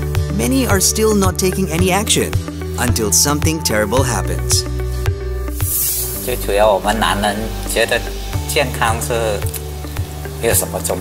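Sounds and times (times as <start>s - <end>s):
background music with steady beat: 0.0s - 11.0s
man speaking: 2.8s - 4.7s.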